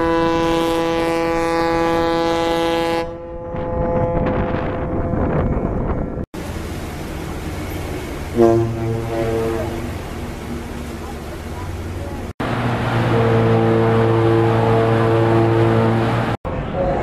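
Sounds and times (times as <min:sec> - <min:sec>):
low ferry horn blast: 0:00.0 - 0:05.4, 0:08.3 - 0:17.0.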